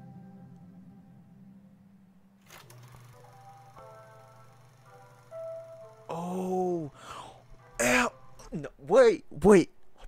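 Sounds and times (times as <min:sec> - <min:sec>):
man crying out: 0:06.1 - 0:07.0, 0:07.8 - 0:09.2
man exclaiming: 0:06.1 - 0:07.0, 0:07.8 - 0:09.7.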